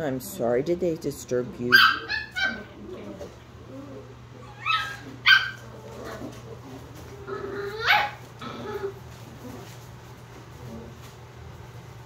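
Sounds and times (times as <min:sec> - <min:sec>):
puppies yipping: 0:01.7 - 0:09.2.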